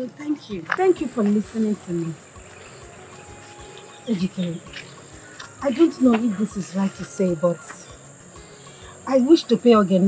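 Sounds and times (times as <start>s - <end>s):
faint background music: 0.0s - 10.0s
insects trilling: 0.1s - 10.0s.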